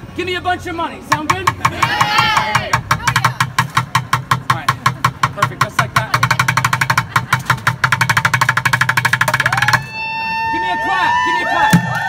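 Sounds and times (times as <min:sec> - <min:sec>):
drumsticks on plastic buckets: 0:01.1 - 0:09.8.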